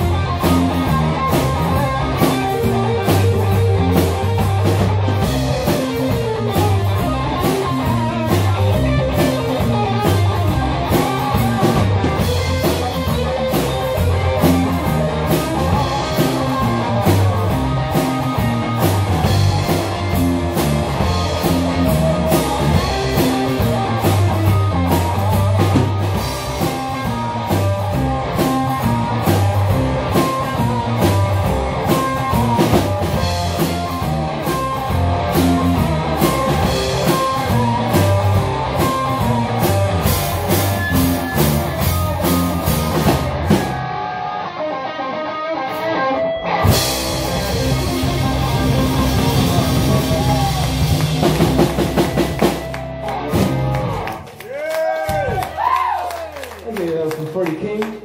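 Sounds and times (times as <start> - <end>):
drum kit with cymbals: 0.0 - 43.9, 46.6 - 54.2
bass guitar: 0.0 - 58.0
electric guitar: 0.0 - 58.0.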